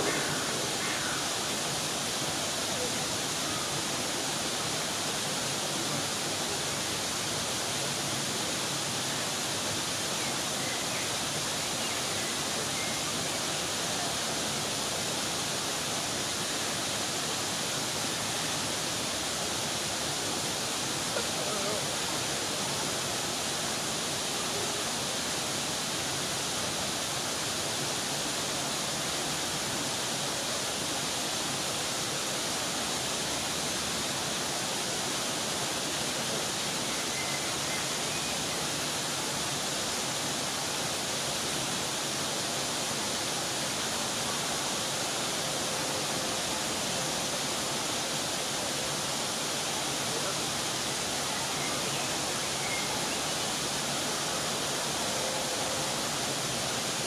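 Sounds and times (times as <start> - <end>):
small waterfall running: 0.0 - 57.0.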